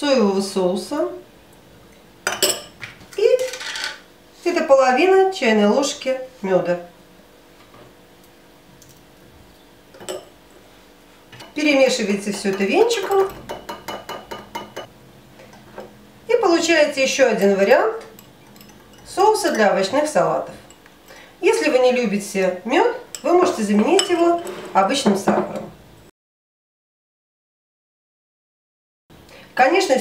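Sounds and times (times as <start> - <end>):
spoon clinking on ceramic bowl: 2.3 - 2.8, 10.0 - 10.4, 12.2 - 14.9, 17.4 - 20.0.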